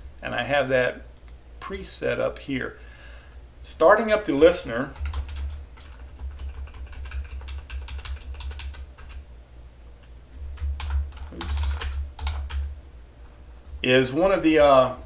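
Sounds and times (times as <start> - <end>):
steady low hum: 0.0 - 15.0
keyboard typing clicks: 4.3 - 9.2, 10.6 - 12.7.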